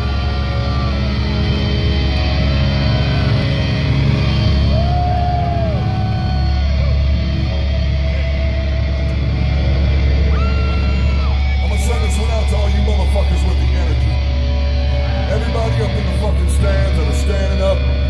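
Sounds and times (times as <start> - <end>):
guitar feedback tones: 0.0 - 18.0
metal band guitars and bass drone: 0.0 - 18.0.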